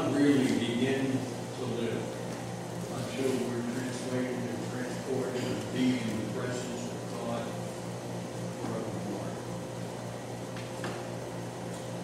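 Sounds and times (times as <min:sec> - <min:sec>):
room tone hum: 0:00.0 - 0:12.0.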